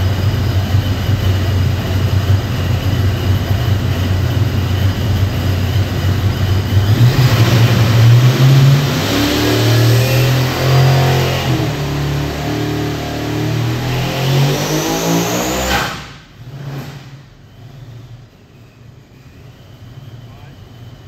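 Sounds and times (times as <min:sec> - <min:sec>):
supercharger whine: 0:00.0 - 0:21.0
engine revving at full throttle: 0:05.1 - 0:17.3.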